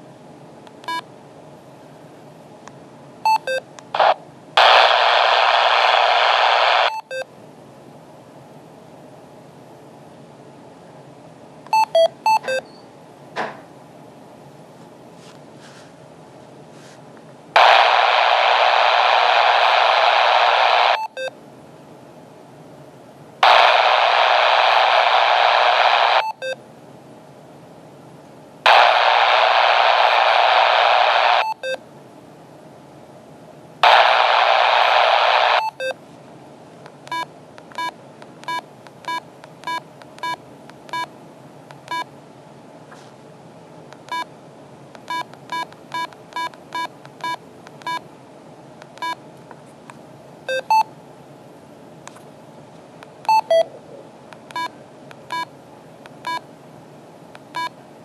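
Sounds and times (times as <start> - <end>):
radio static hiss: 4.0 - 7.1, 17.6 - 21.2, 23.4 - 26.4, 28.7 - 31.6, 33.8 - 36.0
short key beeps: 11.7 - 12.8.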